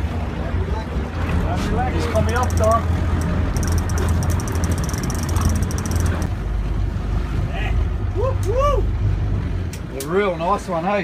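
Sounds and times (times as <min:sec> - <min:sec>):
boat engine droning: 0:00.0 - 0:11.0
rapid fine ticking: 0:02.3 - 0:06.3.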